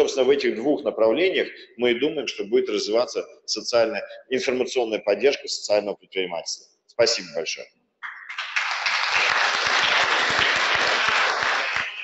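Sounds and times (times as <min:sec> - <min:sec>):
audience applauding: 0:08.0 - 0:12.0.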